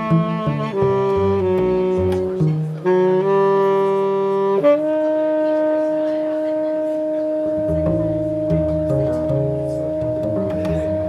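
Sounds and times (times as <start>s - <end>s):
saxophone long steady note: 0.0s - 11.0s.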